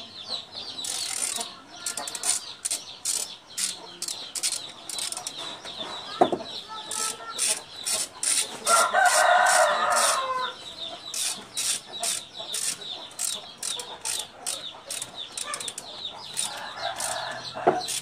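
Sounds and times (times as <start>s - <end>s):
rooster crowing: 8.6s - 10.6s, 16.4s - 18.0s.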